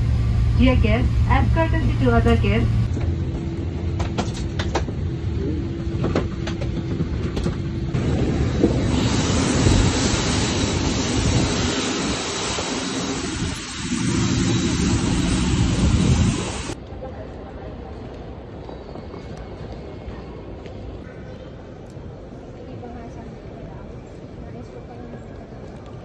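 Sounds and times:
airplane cabin hum: 0.0 - 16.8
engine and air rush: 0.0 - 16.8.

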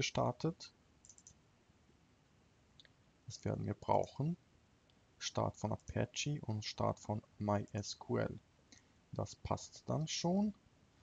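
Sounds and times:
computer mouse clicks: 1.0 - 1.4.

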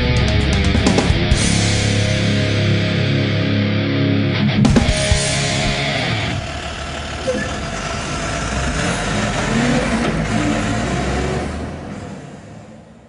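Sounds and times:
truck engine revving: 4.7 - 13.0.

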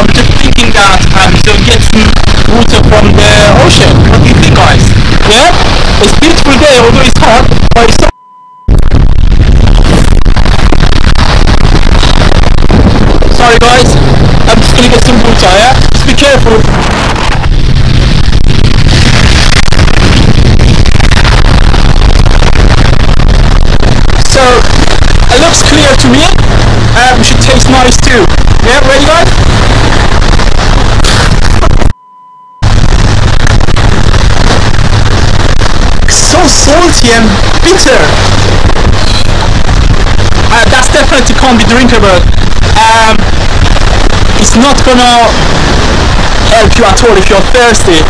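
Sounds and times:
wind buffeting microphone: 8.7 - 31.9, 32.6 - 48.0.

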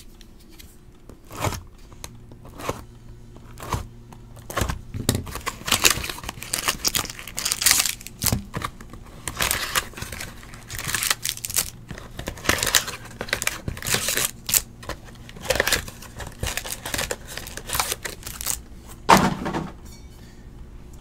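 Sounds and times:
cardboard boxes rustling: 3.4 - 19.4
foil packs crinkling: 4.4 - 18.8.

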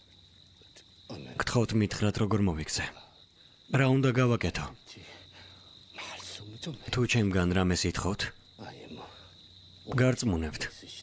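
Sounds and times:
crickets chirring: 0.0 - 11.0
man speaking: 6.0 - 9.2, 9.9 - 11.0.

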